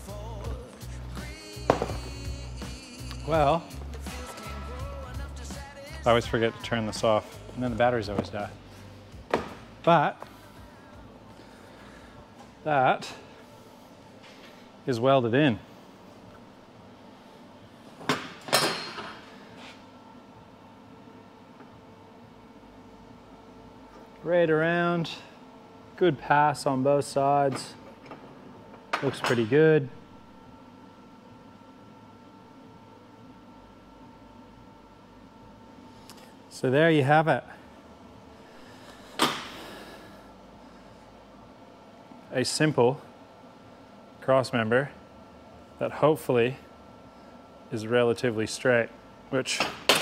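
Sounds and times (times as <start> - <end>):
faint shop hum: 0.0 - 50.0.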